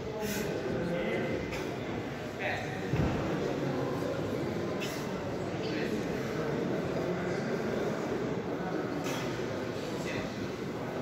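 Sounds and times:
faint voices: 0.0 - 11.0
sports hall hubbub: 0.0 - 11.0.

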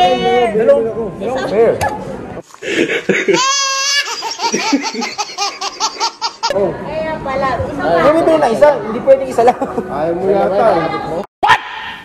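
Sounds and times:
baby laughing: 3.0 - 6.6.

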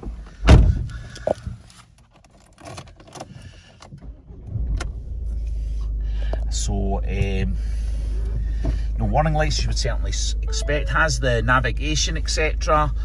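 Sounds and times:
car engine starting and idling: 0.0 - 13.0.

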